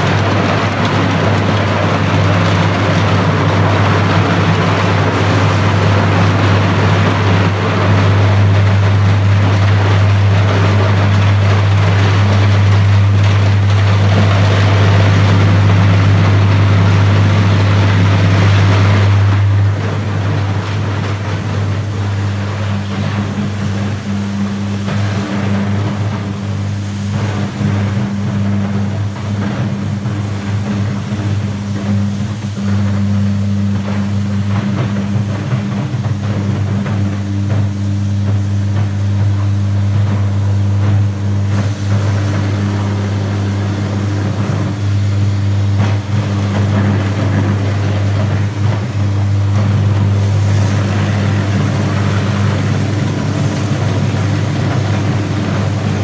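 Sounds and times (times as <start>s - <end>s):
deep electric arc hum: 0.0s - 56.0s
electric arc crackling: 0.0s - 56.0s.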